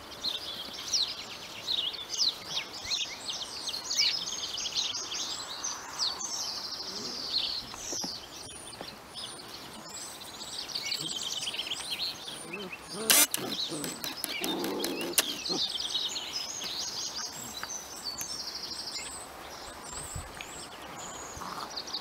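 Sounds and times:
songbirds chirping and singing: 0.0 - 22.0.

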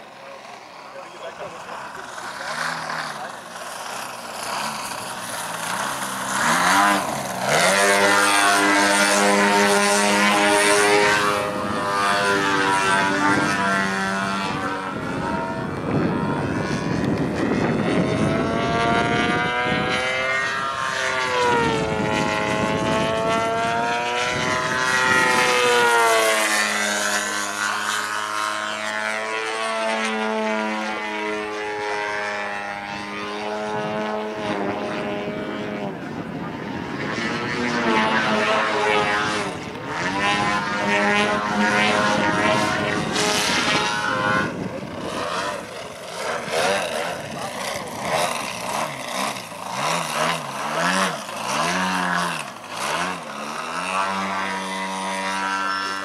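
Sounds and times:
model plane engine running hard: 0.0 - 56.0.

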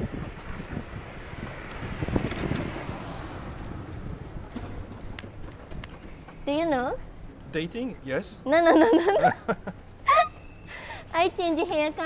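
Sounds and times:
wind on microphone: 0.0 - 6.2
rickshaw wheels rumbling on asphalt: 0.0 - 8.4.

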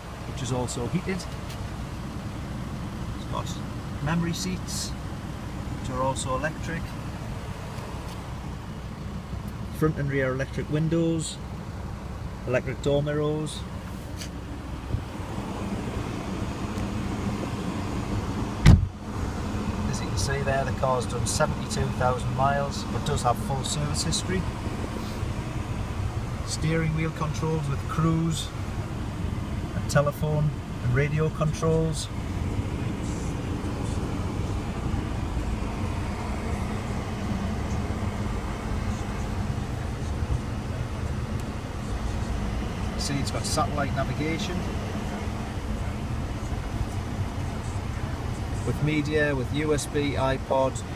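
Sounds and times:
diesel engine idling: 0.0 - 50.9
dull thump: 18.6 - 19.0.

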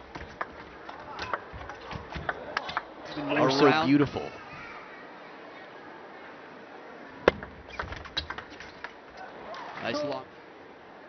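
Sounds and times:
ball bouncing on table: 1.2 - 2.8.

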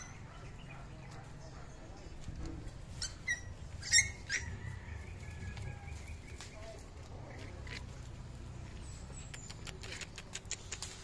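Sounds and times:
animal high-pitched squeaks: 2.9 - 4.6.

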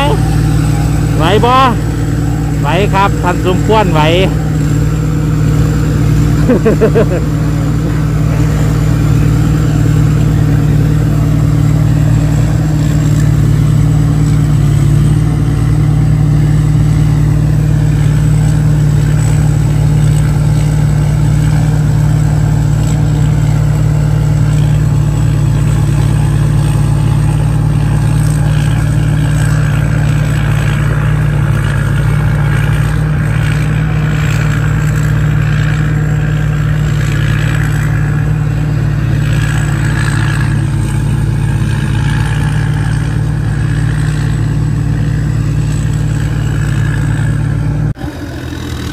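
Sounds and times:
diesel engine running under load: 0.0 - 48.9.

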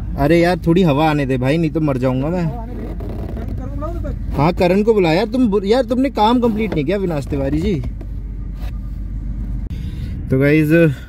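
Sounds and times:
car rumble from inside boot: 0.0 - 10.3.

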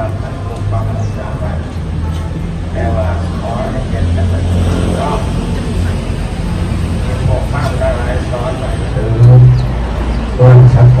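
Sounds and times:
man speaking over loudspeakers: 0.0 - 6.2, 6.8 - 11.0.

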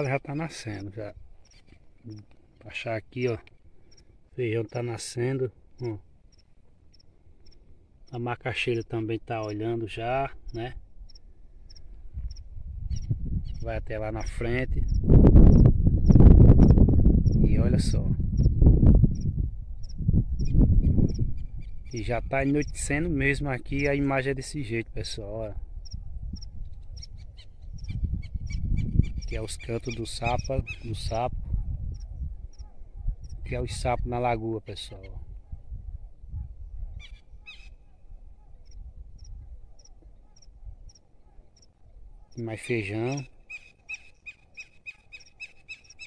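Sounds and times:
frog calling: 5.8 - 9.6, 43.1 - 46.0
low rumbling on microphone: 12.0 - 23.2, 30.5 - 33.8.

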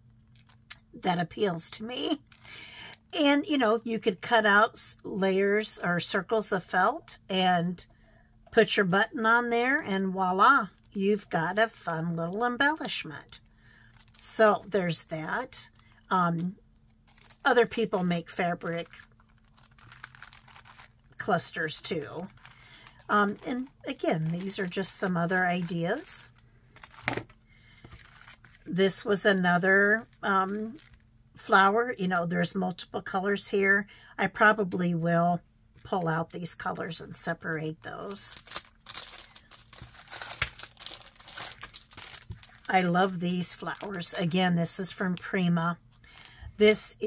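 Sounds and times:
cellophane packs rustling and clicking: 13.2 - 14.4, 16.7 - 27.1, 27.7 - 31.2, 37.6 - 45.0.

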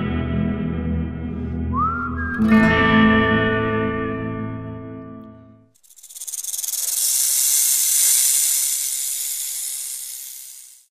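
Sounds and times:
hissing whoosh: 5.8 - 10.9.

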